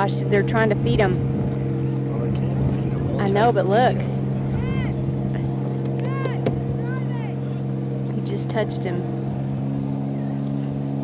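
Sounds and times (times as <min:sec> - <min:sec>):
boat motor idling: 0:00.0 - 0:11.0.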